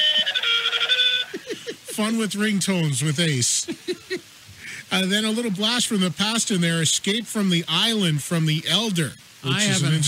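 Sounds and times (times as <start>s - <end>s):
people laughing: 0.0s - 2.4s, 3.1s - 4.9s.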